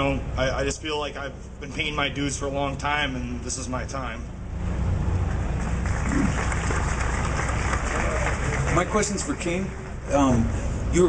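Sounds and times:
low engine-like rumble: 0.0 - 11.0.

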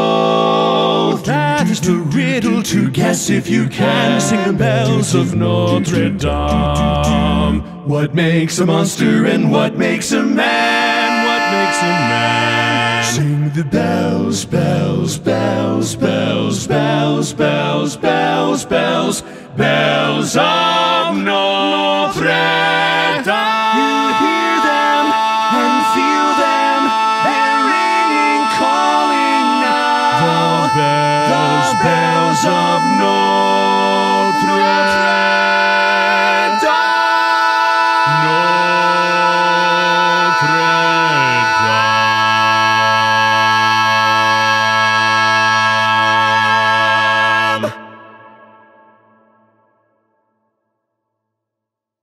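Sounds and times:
barbershop harmony singing: 0.0 - 47.9.

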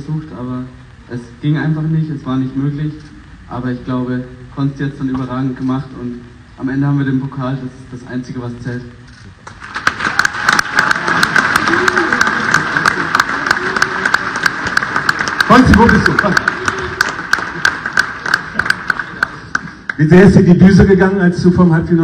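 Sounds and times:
people applauding: 9.4 - 20.4.

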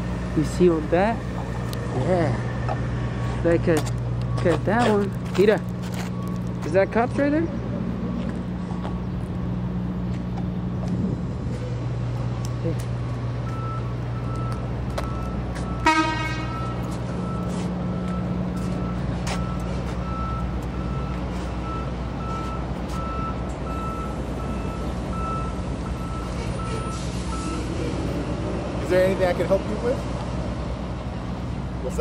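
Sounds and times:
truck backup alarm beeping: 0.0 - 7.6, 12.4 - 27.9
engine humming: 0.0 - 32.0
horn toot: 15.8 - 16.7.

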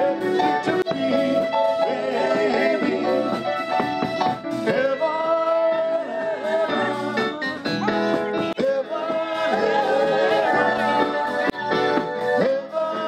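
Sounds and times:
live band music: 0.0 - 13.0
person singing: 0.0 - 13.0.

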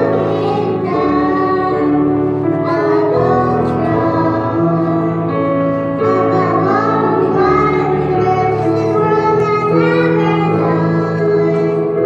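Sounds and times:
children singing into microphones: 0.0 - 12.0.

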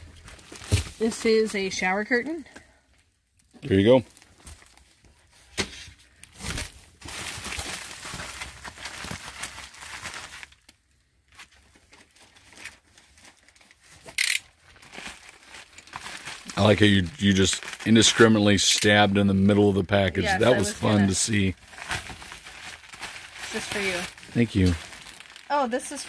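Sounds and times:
plastic packaging crinkling: 6.2 - 19.1, 20.1 - 26.0.

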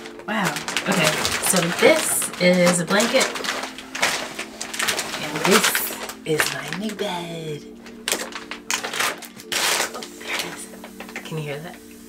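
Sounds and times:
plastic wrap crackling and rustling: 0.0 - 12.0.

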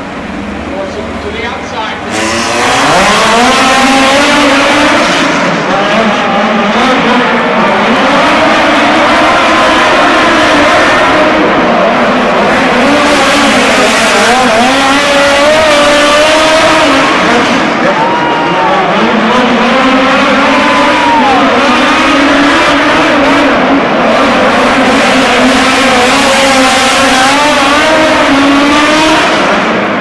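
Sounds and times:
race car engines at full throttle: 0.0 - 30.0.

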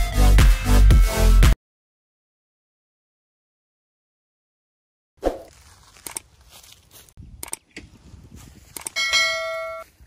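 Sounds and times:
short clicks: 7.4 - 7.8, 8.7 - 9.0
notification bell ding: 9.0 - 9.9.

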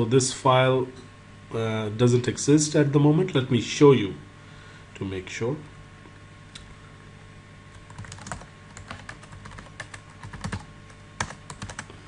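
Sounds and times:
typing on computer keyboard: 7.8 - 11.9.

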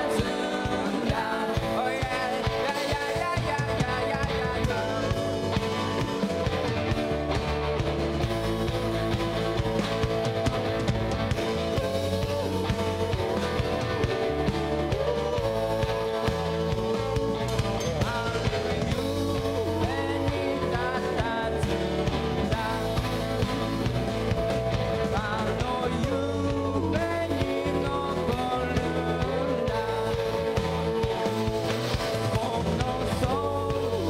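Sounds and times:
drums: 0.0 - 34.0
electric guitar: 0.0 - 34.0
person singing: 0.0 - 34.0
steady bass: 0.0 - 34.0.

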